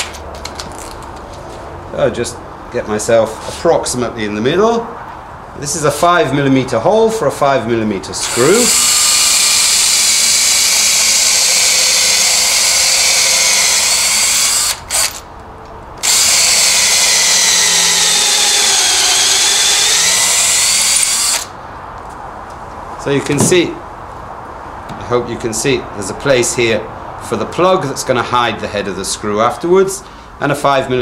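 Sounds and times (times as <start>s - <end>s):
cordless drill whining: 8.2s - 15.2s, 16.0s - 21.6s.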